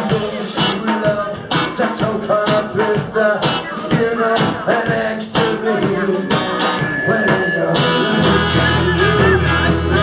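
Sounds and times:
bass guitar: 0:00.0 - 0:10.0
drum kit beat: 0:00.0 - 0:10.0
electric guitars: 0:00.0 - 0:10.0.

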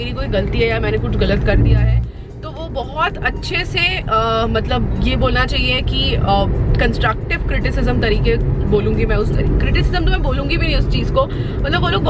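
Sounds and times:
car cabin rumble: 0:00.0 - 0:12.0
woman talking: 0:00.0 - 0:12.0.

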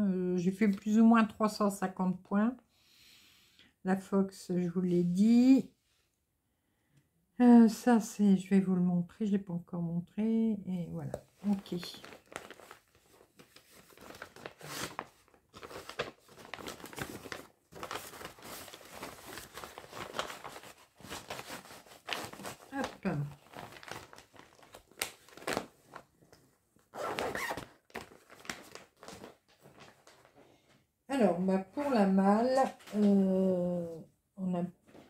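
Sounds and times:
plastic bag crinkling: 0:11.4 - 0:30.4.

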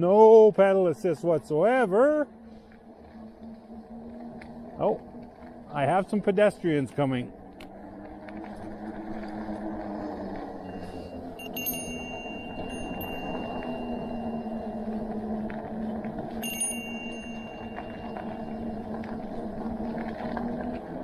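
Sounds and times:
bicycle tyres rolling on pavement: 0:00.0 - 0:21.0
low hum: 0:00.0 - 0:21.0
bicycle bell ringing: 0:10.6 - 0:15.4, 0:16.3 - 0:19.0.

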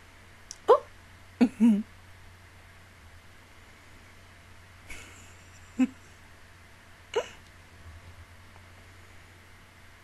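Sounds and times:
woman giggling: 0:01.4 - 0:01.9, 0:04.9 - 0:06.1, 0:07.2 - 0:07.4.

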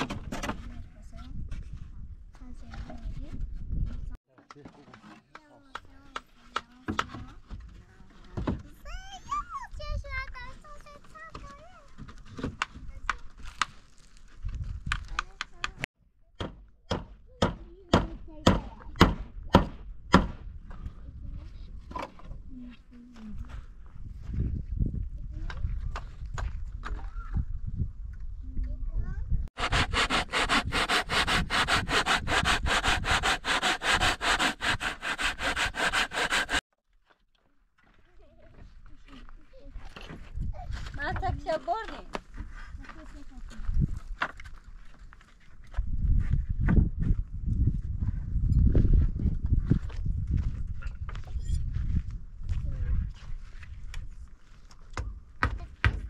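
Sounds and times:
hammer blows on wooden boards: 0:16.4 - 0:20.5
hand saw cutting wood: 0:29.6 - 0:36.6.

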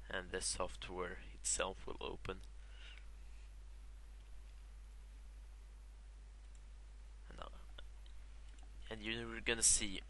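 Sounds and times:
microphone hum and hiss: 0:00.0 - 0:10.0
computer mouse clicks: 0:06.4 - 0:06.7.

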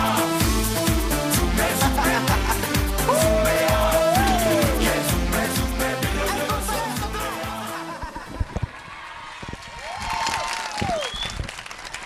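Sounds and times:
short cheers: 0:03.1 - 0:04.9, 0:09.8 - 0:11.4
audience applauding: 0:08.8 - 0:12.0.

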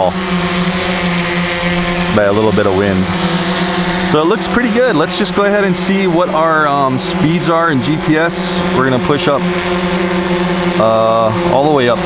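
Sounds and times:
quadcopter hovering hum: 0:00.0 - 0:12.0.

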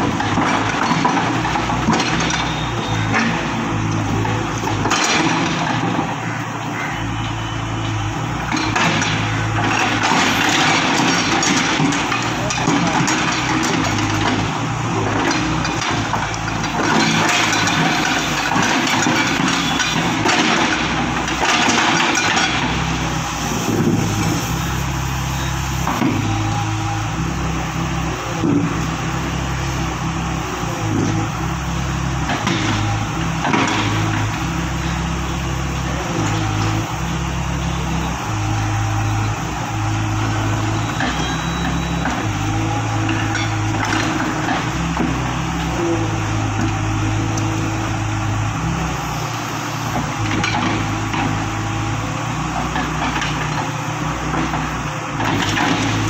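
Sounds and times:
excavator diesel engine: 0:00.0 - 0:56.0.

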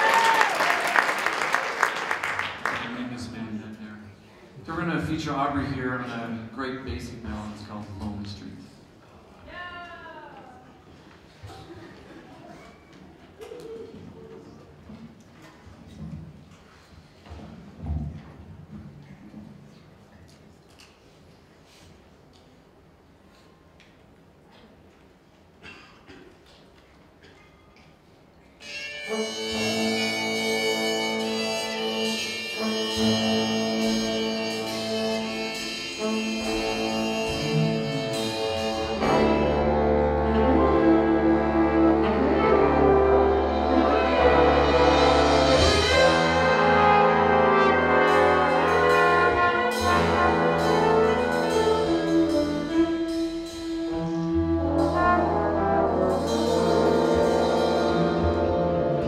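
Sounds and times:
jazz big band playing: 0:28.6 - 0:59.0
low bass line: 0:36.4 - 0:53.2, 0:53.8 - 0:59.0.

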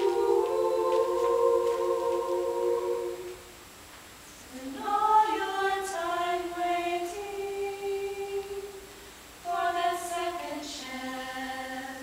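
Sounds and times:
women's choir sustained note: 0:00.0 - 0:03.5.

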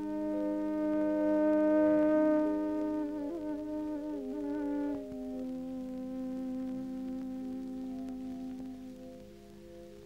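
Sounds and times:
held chord of film music: 0:00.0 - 0:10.0.

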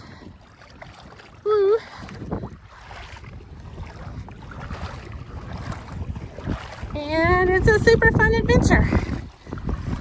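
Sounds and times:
footsteps splashing in shallow water: 0:00.0 - 0:10.0
wind on microphone: 0:00.0 - 0:10.0.

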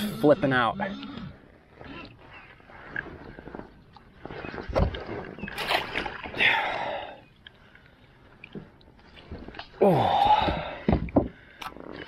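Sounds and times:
fish thrashing and splashing: 0:01.8 - 0:07.1.

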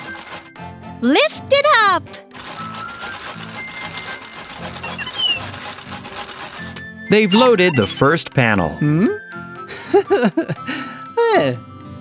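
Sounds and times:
light background music: 0:00.0 - 0:12.0
mechanical clicking and whirring: 0:02.3 - 0:06.9.

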